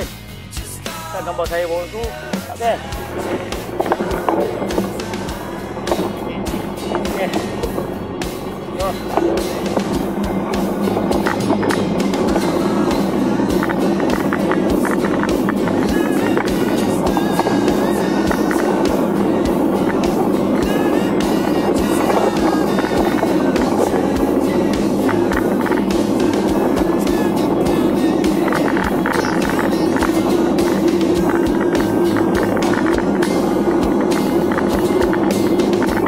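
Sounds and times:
bike rattling: 2.4s - 36.0s
bike tyre rumble: 2.4s - 36.0s.

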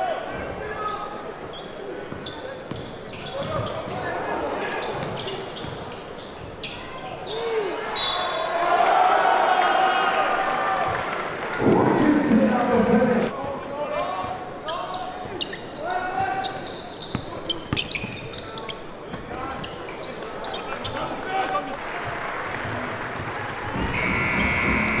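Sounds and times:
sneakers squeaking on hardwood: 1.5s - 4.0s, 4.8s - 7.3s, 16.2s - 19.8s
shouts and crowd voices: 7.2s - 14.2s
electronic buzzer horn: 23.8s - 25.0s.

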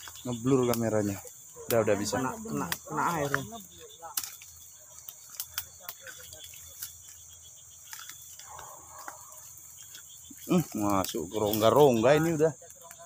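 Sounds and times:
crickets chirping: 0.0s - 13.0s
rustling through undergrowth: 0.0s - 13.0s.

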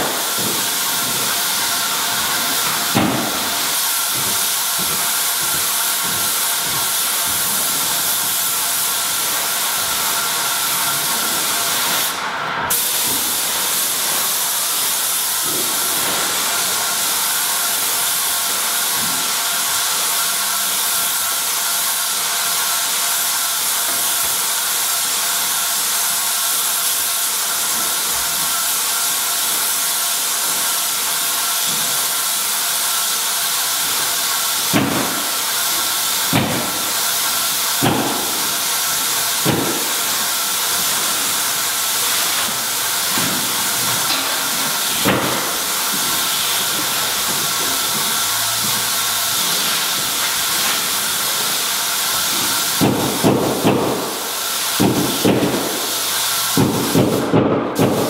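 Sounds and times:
paint sprayer gun hissing: 0.0s - 58.0s.

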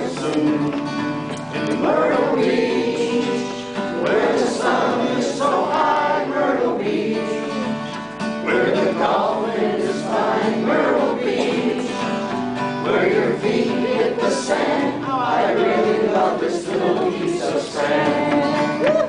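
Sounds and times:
acoustic guitar strumming: 0.0s - 19.0s
man singing country song: 0.0s - 19.0s.

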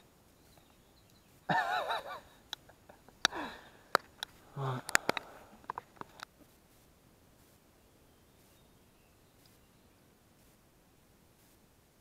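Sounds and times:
sharp clicks: 2.5s - 6.3s.

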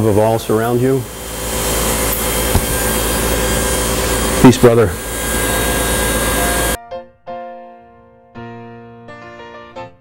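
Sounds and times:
electric hair clippers buzzing: 0.9s - 6.8s.

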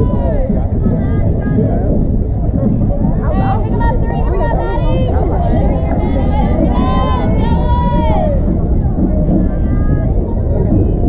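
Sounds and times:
people chattering and calling out: 0.0s - 11.0s
steady low rumble: 0.0s - 11.0s.

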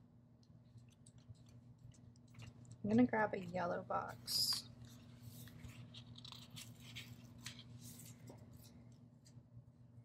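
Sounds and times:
low steady hum: 0.0s - 10.0s
sticker sheet rustling: 0.7s - 8.9s.

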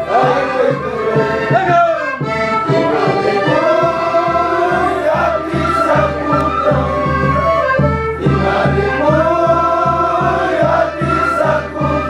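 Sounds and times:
group singing in chorus: 0.0s - 12.0s
steady drum beat: 0.0s - 12.0s.

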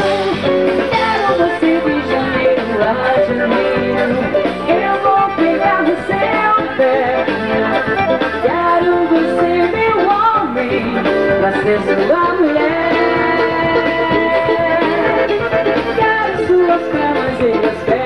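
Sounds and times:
live band music: 0.0s - 18.0s.

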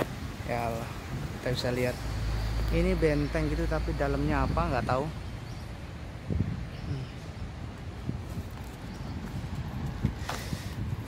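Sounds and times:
footsteps on paved path: 7.2s - 11.0s.

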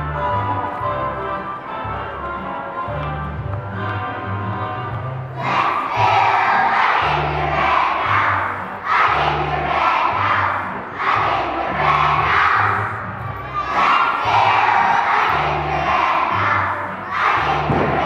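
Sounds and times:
children singing together: 5.3s - 18.0s.

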